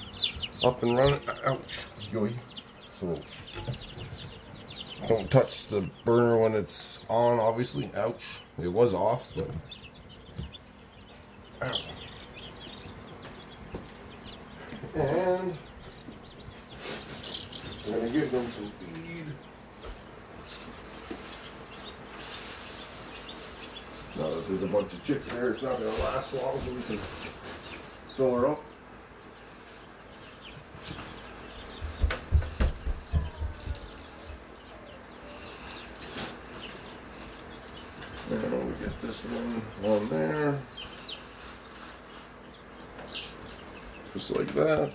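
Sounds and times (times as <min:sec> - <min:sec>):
chicks peeping: 0:00.0 - 0:44.9.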